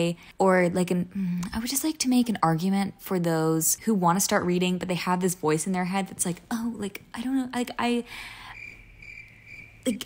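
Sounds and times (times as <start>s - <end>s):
short breath: 8.1s - 8.6s
high pulsing chirping: 8.4s - 10.0s.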